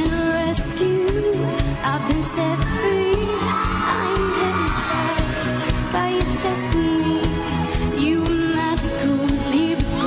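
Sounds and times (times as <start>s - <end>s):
woman singing pop song: 0.0s - 10.0s.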